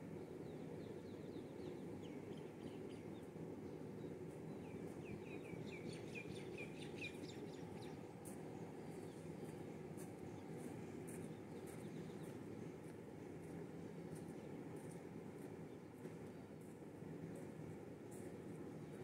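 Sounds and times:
low outdoor background noise: 0.0 - 19.0
bird chirping: 0.6 - 8.1.

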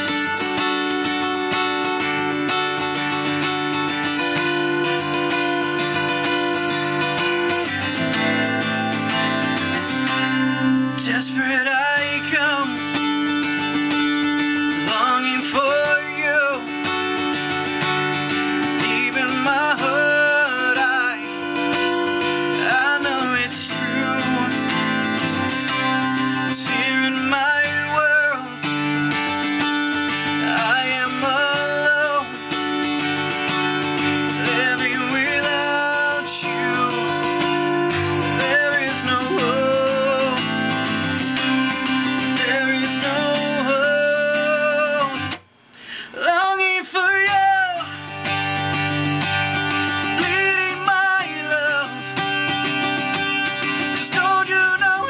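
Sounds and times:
man singing: 0.0 - 1.2, 3.2 - 17.4, 18.4 - 33.2, 34.0 - 55.0
acoustic guitar chords: 0.0 - 55.0.

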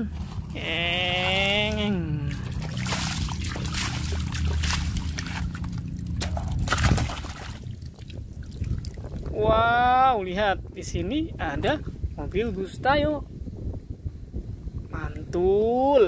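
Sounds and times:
water sloshing and splashing: 0.0 - 9.4.

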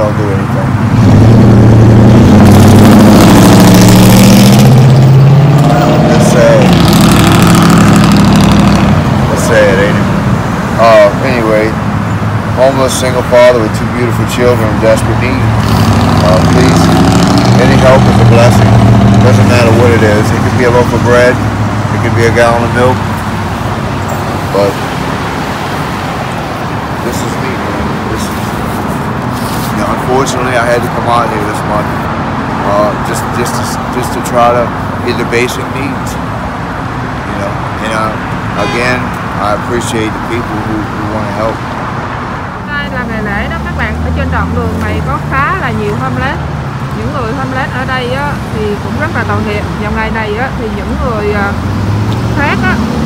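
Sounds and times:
road traffic: 0.0 - 53.0
vehicle engine droning: 0.0 - 53.0
man saying a word: 37.3 - 41.5.

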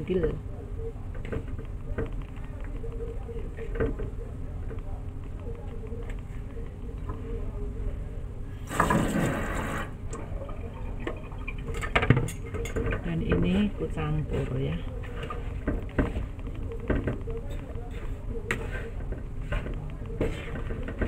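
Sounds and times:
hands mixing grainy food in bowl: 13.4 - 21.0.

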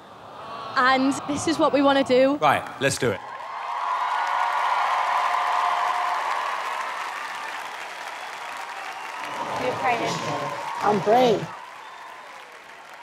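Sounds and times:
audience applauding: 3.2 - 13.0.

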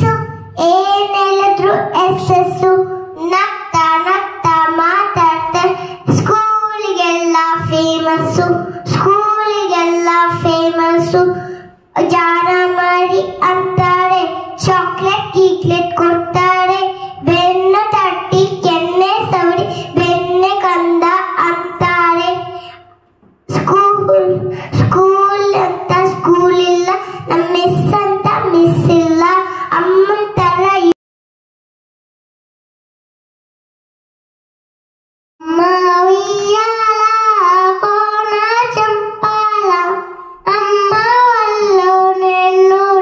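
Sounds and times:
girl singing into a microphone: 0.0 - 30.9, 35.4 - 43.0.

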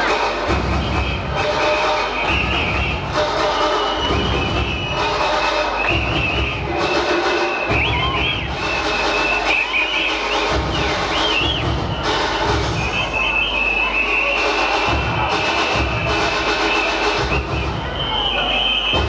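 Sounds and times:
rave dance music: 0.0 - 19.0.

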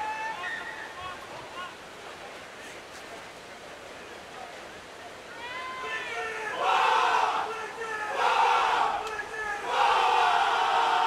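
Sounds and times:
people shouting: 5.4 - 11.0.

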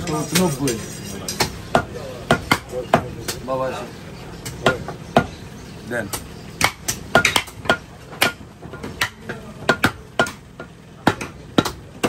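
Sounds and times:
blades knocking on chopping block: 6.1 - 12.0.

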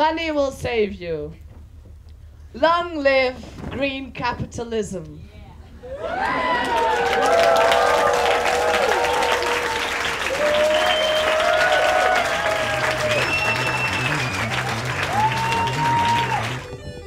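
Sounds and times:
cheering whoops: 5.8 - 16.8
audience applauding: 6.0 - 17.0
low pulsing music beat: 12.7 - 17.0.

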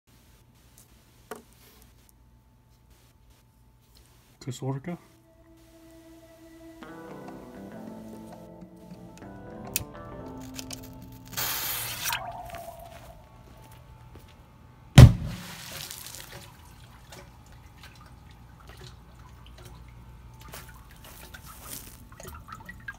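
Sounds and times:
firecracker fuse hiss: 11.2 - 12.2
loud underwater bang: 15.0 - 15.8
water splashing: 15.0 - 22.9
water dripping through grate: 15.4 - 22.9.

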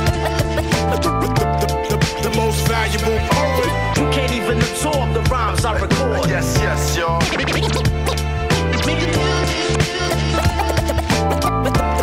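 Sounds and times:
hip-hop bass and drum loop: 0.0 - 12.0
turntable scratching: 7.0 - 12.0.

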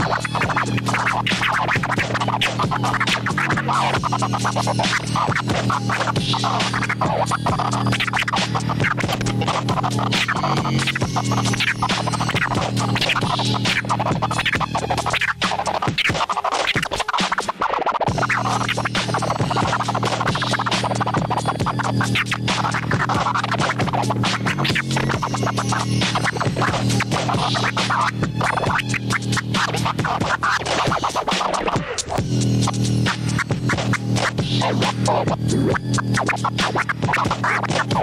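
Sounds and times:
hip-hop beat: 0.0 - 38.0
vinyl record scratching: 0.0 - 38.0.

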